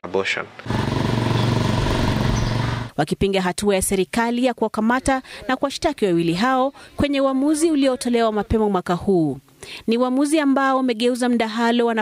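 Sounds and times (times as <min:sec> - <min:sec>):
motorcycle engine running: 0:00.6 - 0:02.9.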